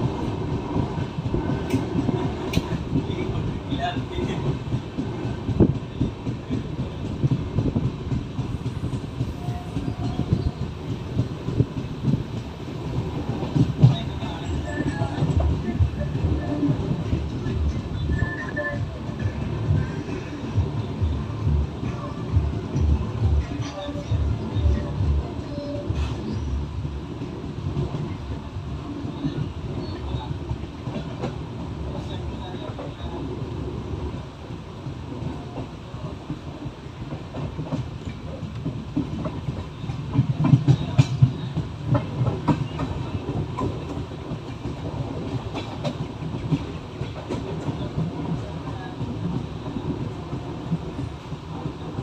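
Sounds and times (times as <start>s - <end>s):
clickety-clack over rail joints: 0.0s - 52.0s
train wheels rumbling: 0.0s - 52.0s.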